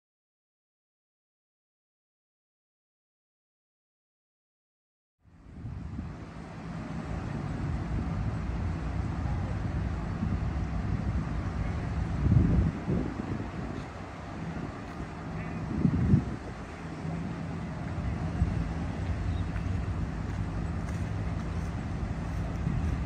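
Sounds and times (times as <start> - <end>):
traffic rumble: 5.2 - 23.0
wind buffeting microphone: 5.4 - 23.0.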